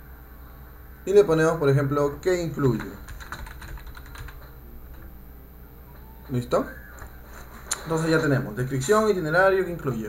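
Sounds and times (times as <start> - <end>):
steady low background hum: 0.0 - 10.0.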